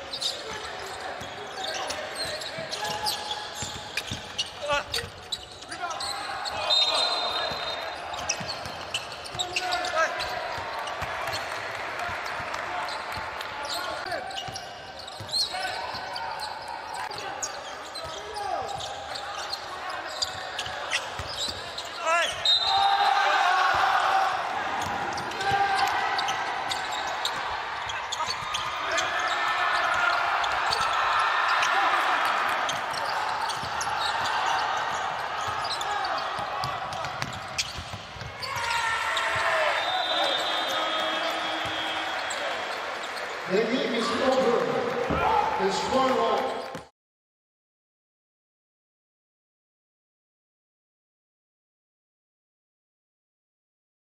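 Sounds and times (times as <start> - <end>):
people shouting: 22.1 - 26.8.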